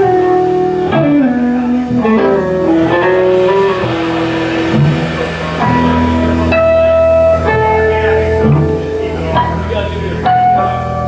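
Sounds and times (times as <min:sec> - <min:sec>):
live rock band playing: 0:00.0 - 0:09.4
electric guitar bending notes: 0:00.0 - 0:10.6.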